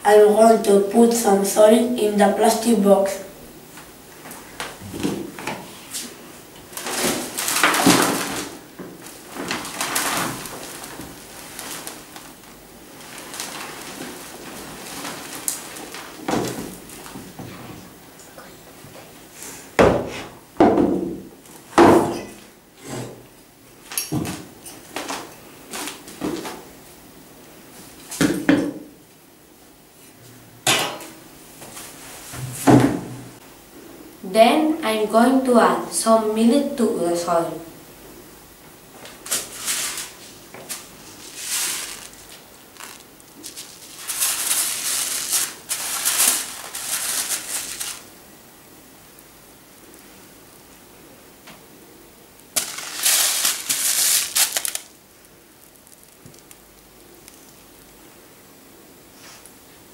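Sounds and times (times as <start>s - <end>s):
soil pouring rustle: 6.7s - 17.2s, 39.2s - 48.1s, 52.5s - 57.9s.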